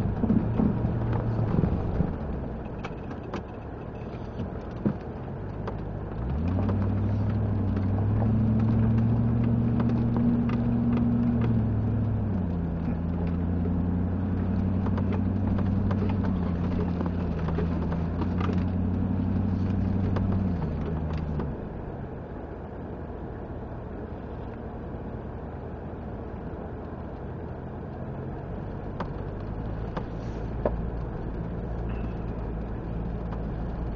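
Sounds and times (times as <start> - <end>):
light knocks and rattles: 0.0 - 21.6, 27.2 - 33.9
off-road vehicle engine revving: 5.2 - 22.2.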